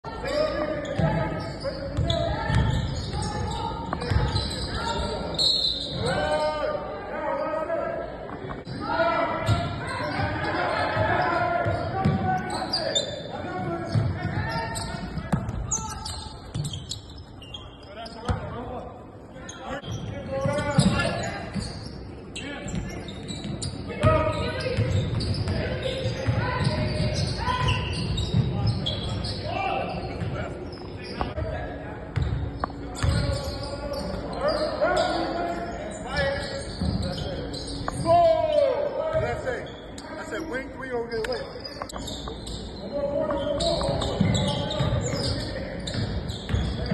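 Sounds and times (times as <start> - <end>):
basketball bouncing on hardwood floor: 3.9 - 4.3.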